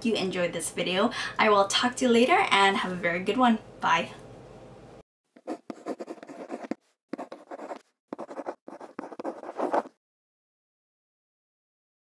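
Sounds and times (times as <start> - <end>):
pen scratching on paper: 5.4 - 10.0.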